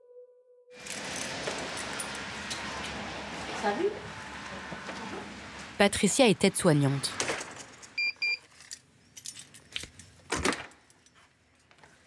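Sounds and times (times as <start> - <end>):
keys jangling: 7.6 - 10.1
electronic door lock beeps: 8.0 - 8.4.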